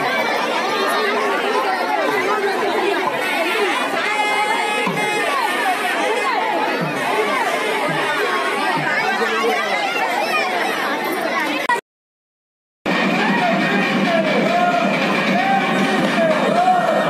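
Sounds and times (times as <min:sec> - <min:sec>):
crowd talking and calling: 0:00.0 - 0:11.8, 0:12.9 - 0:17.0.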